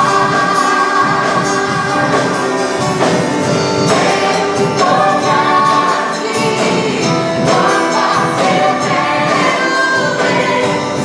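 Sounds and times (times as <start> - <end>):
women singing together: 0.0 - 2.8, 3.8 - 11.0
band with drums and keyboard: 0.0 - 11.0.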